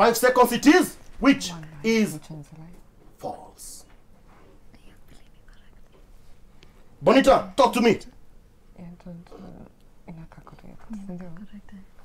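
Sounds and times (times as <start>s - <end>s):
women talking in low voices: 8.7s - 11.9s.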